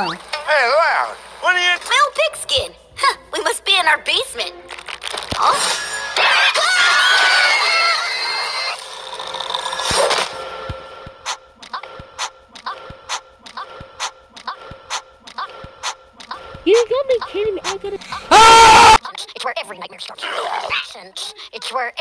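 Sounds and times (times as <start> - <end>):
shrill wavering scream-like sound: 5.4 - 8.9.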